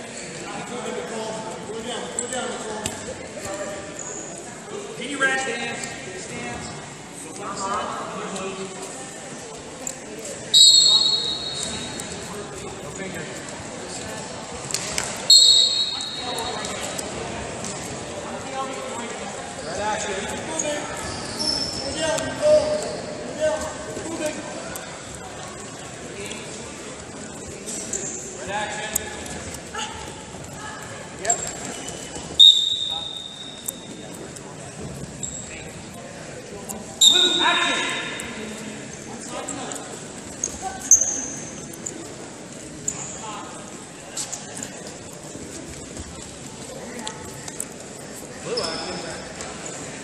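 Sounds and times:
voices calling out in a hall: 0.0s - 50.0s
referee's whistle blast: 10.6s - 11.8s, 15.3s - 16.3s, 32.4s - 33.6s, 37.0s - 37.5s
loud squeak: 20.6s - 23.1s.

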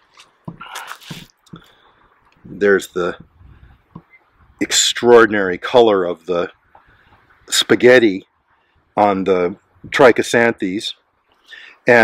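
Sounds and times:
gourd halves coming apart: 0.1s - 1.3s.

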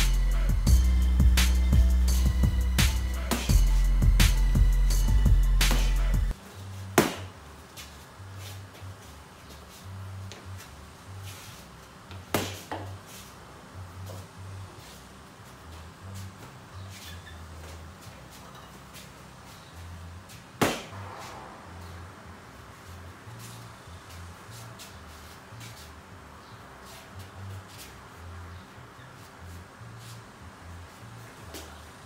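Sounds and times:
punches on heavy bag: 7.0s - 7.3s, 12.4s - 12.9s, 20.6s - 21.4s.

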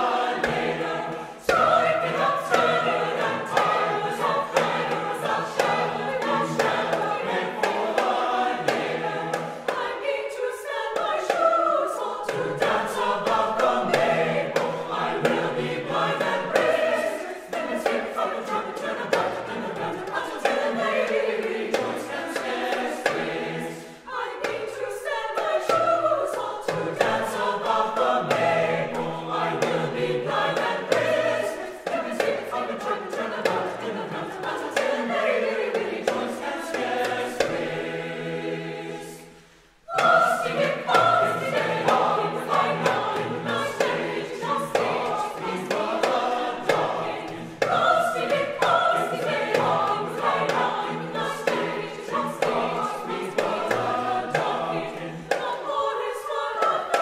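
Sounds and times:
hand drum tapping steady beat: 0.0s - 10.0s, 12.3s - 23.6s, 25.4s - 37.8s, 39.9s - 55.5s
mixed choir singing madrigal: 0.0s - 57.0s.

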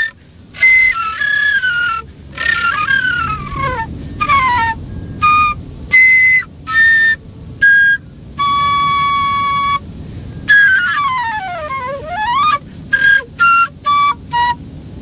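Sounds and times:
whistle-like wind instrument music: 0.0s - 15.0s.

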